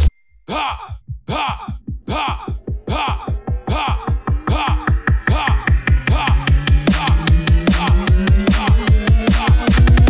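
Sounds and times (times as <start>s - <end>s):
groaning vocal sample: 0.5s - 9.7s
fast low drum pulses: 0.9s - 10.0s.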